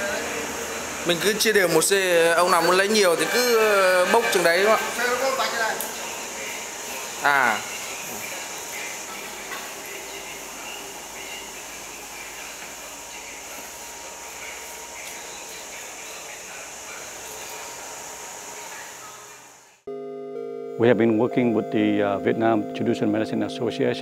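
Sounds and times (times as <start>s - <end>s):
steady background hiss: 0.0s - 19.8s.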